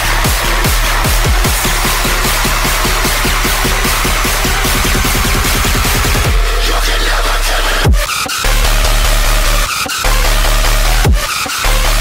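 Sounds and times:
deep sub-bass: 0.0s - 12.0s
distorted synth bass: 0.0s - 12.0s.

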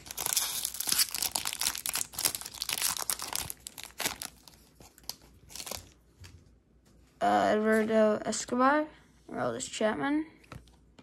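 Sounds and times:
foil wrapper crinkling: 0.0s - 6.0s.

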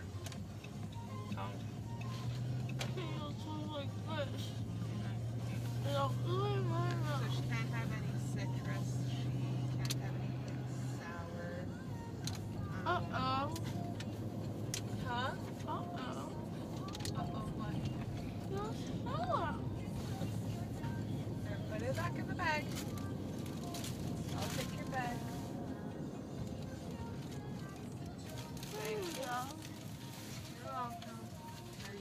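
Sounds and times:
car cabin hum and rumble: 0.0s - 32.0s.

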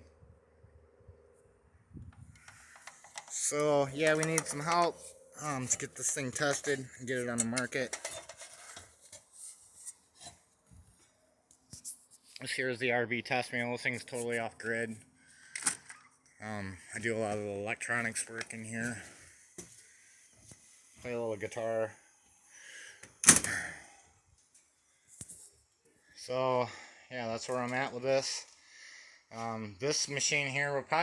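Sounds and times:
phone handling noise: 2.1s - 5.1s.

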